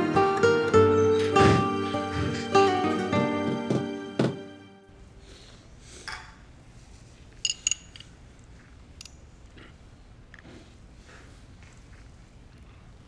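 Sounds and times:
glass clinking: 7.4s - 8.1s.

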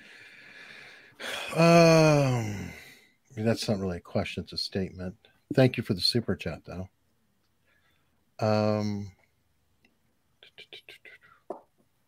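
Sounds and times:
person whispering: 10.4s - 11.6s.

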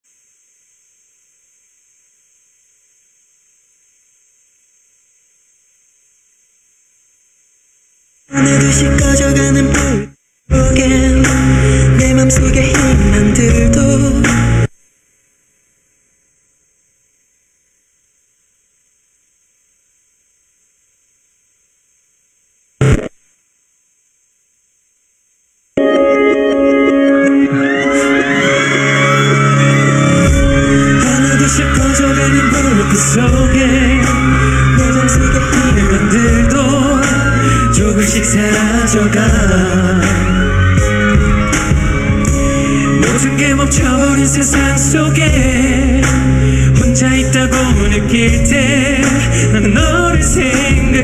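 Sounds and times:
faint steady hiss: 0.0s - 25.9s
short loud electronic buzz: 22.8s - 23.2s.

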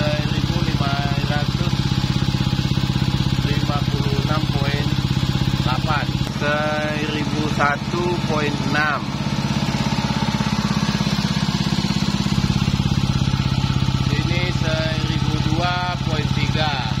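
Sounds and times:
pump running with rapid pulse: 0.0s - 17.0s.

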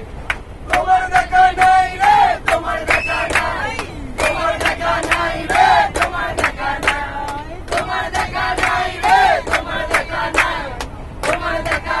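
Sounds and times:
group of people singing: 0.7s - 12.0s.

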